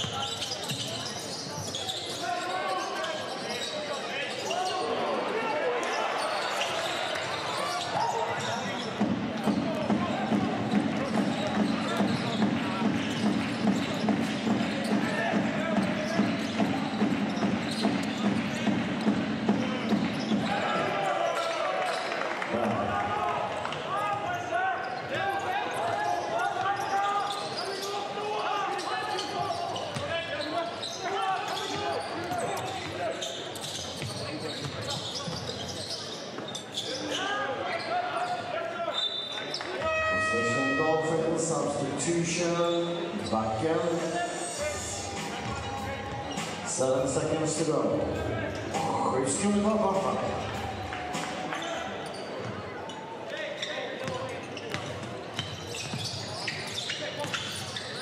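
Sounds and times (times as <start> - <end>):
crowd voices: 0.0 - 58.0.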